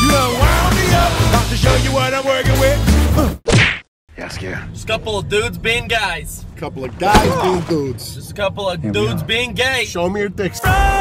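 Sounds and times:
swing music: 0.0 - 3.4, 10.5 - 11.0
short swishing whack: 3.5 - 3.9, 7.1 - 7.7.

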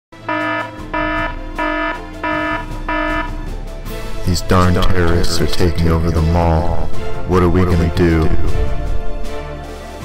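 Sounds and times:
buzzy electronic alarm tone: 0.2 - 3.4.

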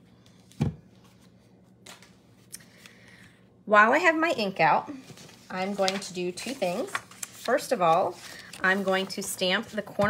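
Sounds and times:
soft paper ticks and rustles: 5.0 - 10.0.

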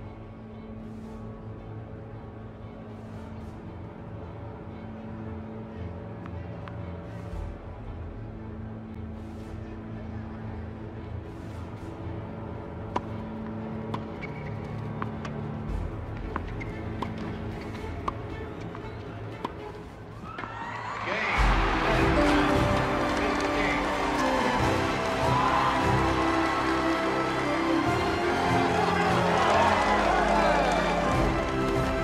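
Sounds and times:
soft background music: 0.0 - 32.0
large crowd cheering: 20.2 - 32.0.

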